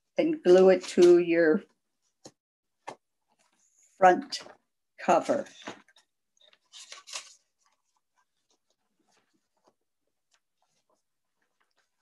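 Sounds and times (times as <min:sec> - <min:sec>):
card stock rustling: 0:05.6 - 0:12.0.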